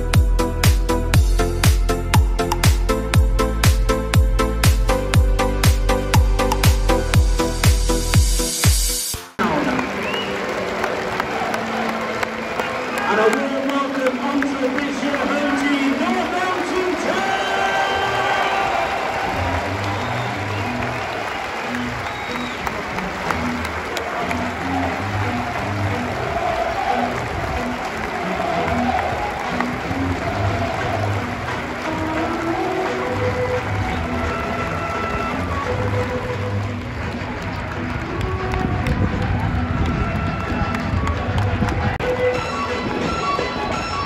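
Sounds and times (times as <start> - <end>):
music with low bass line: 0.0 - 9.3
music playing: 0.0 - 44.0
crowd clapping: 9.1 - 43.5
handclaps: 9.4 - 42.3.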